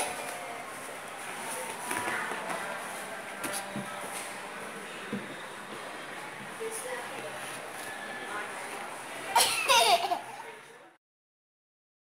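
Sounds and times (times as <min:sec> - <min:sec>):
steady background noise: 0:00.0 - 0:11.0
toddler laughing: 0:09.4 - 0:10.4.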